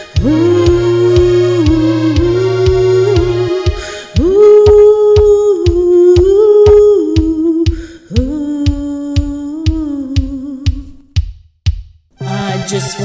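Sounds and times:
instrumental synth-pop music: 0.0 - 6.0, 12.2 - 13.0.

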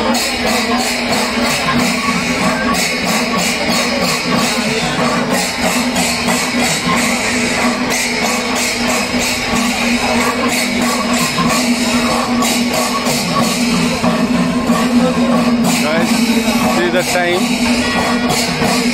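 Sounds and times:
drums: 0.0 - 18.9
hand cymbals clashing: 0.0 - 18.9
steady pitched tone: 0.0 - 18.9.

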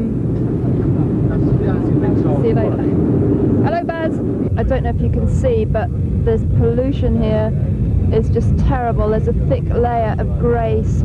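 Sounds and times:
airliner cabin rumble: 0.0 - 11.0
faint passenger voices: 0.0 - 11.0.

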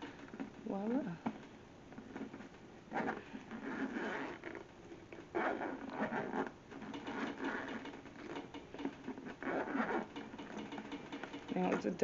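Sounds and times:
hands rustling a rubber purse: 0.0 - 12.0.

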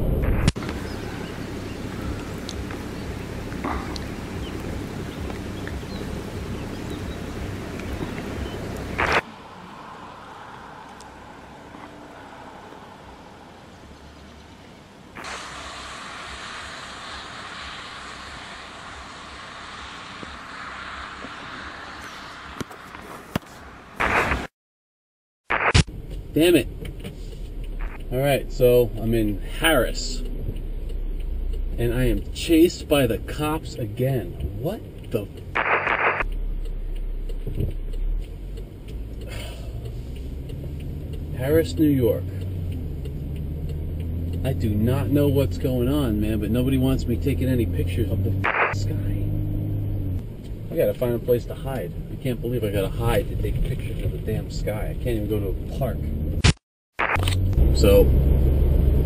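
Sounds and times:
car road and engine rumble: 0.0 - 24.5, 25.8 - 59.0
traffic noise: 0.0 - 24.5, 25.5 - 59.0
bright hiss: 15.1 - 24.4.

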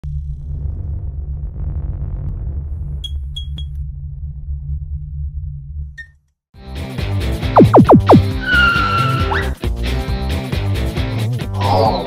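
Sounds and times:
deep low drone: 0.0 - 3.0, 3.8 - 5.9.

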